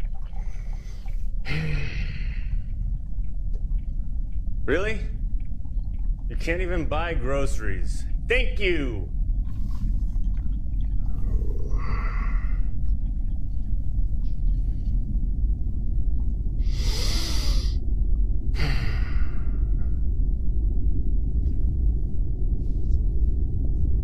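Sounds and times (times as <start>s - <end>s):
steady low rumble: 0.0s - 24.0s
man breathing heavily: 16.6s - 17.8s, 18.6s - 19.9s.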